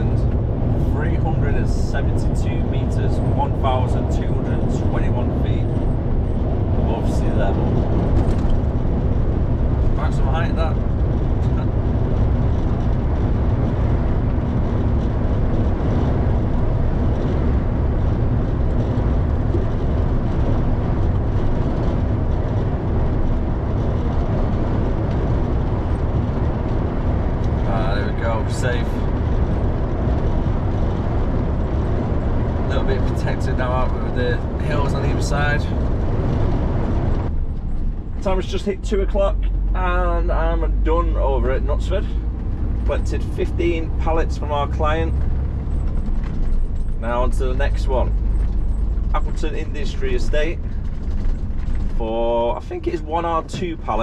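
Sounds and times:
lorry cruising from inside cab: 0.0 - 54.0.

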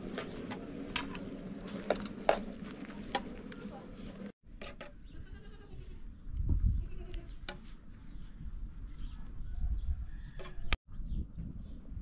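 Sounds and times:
farm animal bleating: 5.0 - 6.1, 6.8 - 7.4.

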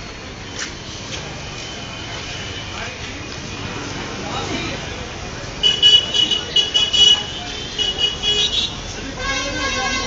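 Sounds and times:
street traffic noise: 0.0 - 10.0
vehicle horn tooting: 5.6 - 10.0.

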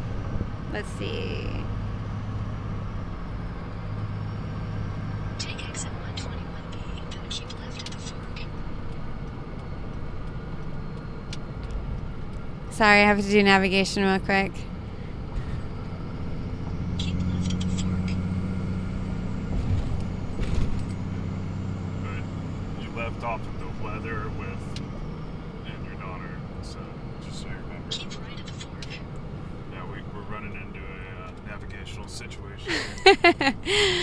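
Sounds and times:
engine and road hum: 0.0 - 34.0.

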